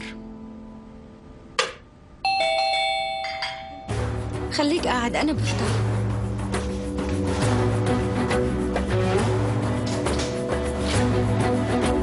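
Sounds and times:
doorbell chime ringing: 0:02.2 - 0:04.2.

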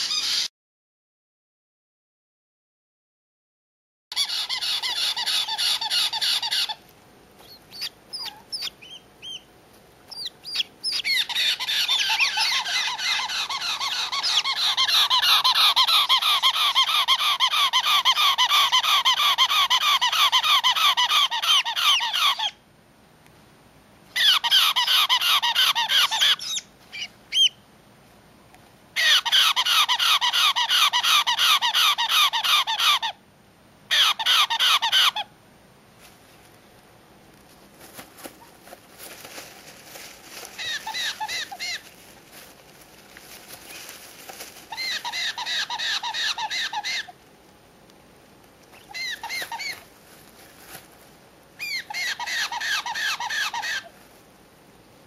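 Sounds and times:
parrot chicks screaming: 0:00.0 - 0:00.5, 0:04.1 - 0:06.8, 0:07.4 - 0:09.5, 0:10.1 - 0:22.6, 0:24.1 - 0:27.6, 0:29.0 - 0:33.2, 0:33.9 - 0:35.3, 0:40.4 - 0:42.0, 0:43.6 - 0:47.2, 0:48.7 - 0:49.9, 0:51.6 - 0:54.0.

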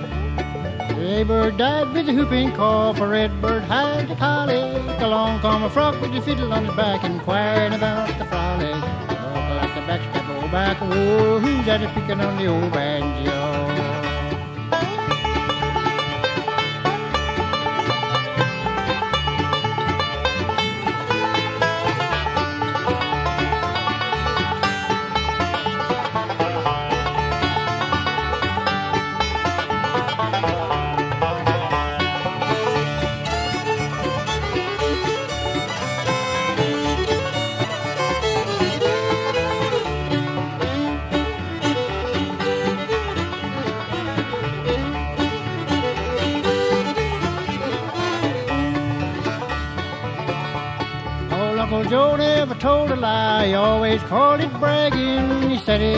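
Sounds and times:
banjo: 0:00.0 - 0:55.9
bass: 0:00.0 - 0:55.9
fiddle: 0:00.0 - 0:55.9
mandolin: 0:00.0 - 0:55.9
rhythm guitar: 0:00.0 - 0:55.9.

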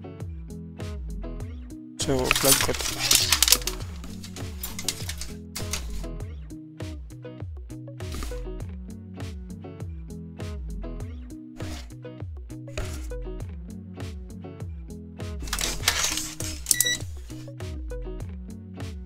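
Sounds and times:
background music with beat: 0:00.0 - 0:19.0
sharp clicks: 0:02.2 - 0:06.0.

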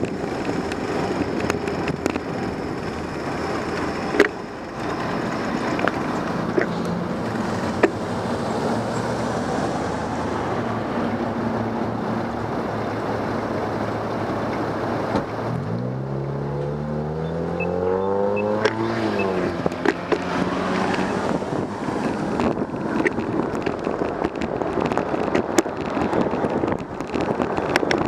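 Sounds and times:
car engine pulling away: 0:00.0 - 0:28.0
street traffic hum: 0:00.0 - 0:28.0.

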